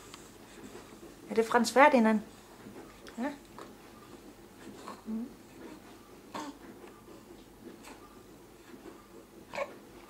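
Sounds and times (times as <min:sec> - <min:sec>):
baby cooing: 0:05.7 - 0:06.6, 0:09.5 - 0:09.8.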